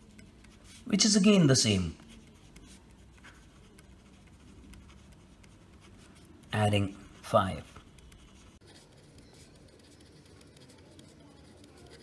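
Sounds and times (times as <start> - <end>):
pen scratching on paper: 0.0 - 12.0.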